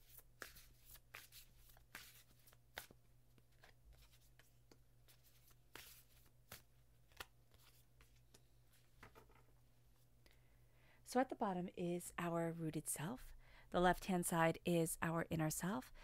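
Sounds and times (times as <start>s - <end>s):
cards being shuffled: 0.0s - 9.4s.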